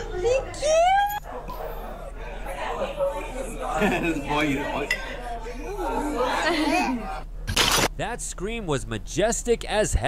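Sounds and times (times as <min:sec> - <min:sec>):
people talking: 0:00.0 - 0:07.3.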